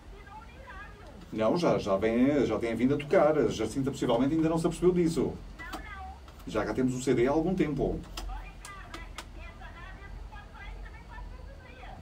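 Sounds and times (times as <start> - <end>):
sharp clicks: 8.0 - 9.4.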